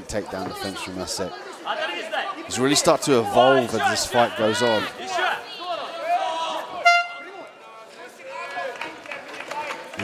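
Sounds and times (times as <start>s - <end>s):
people shouting in a hall: 1.4s - 8.9s
electronic horn blast: 6.8s - 7.3s.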